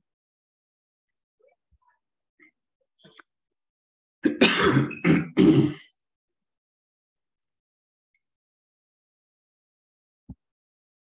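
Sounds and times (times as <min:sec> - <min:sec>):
person coughing: 0:04.2 - 0:05.9.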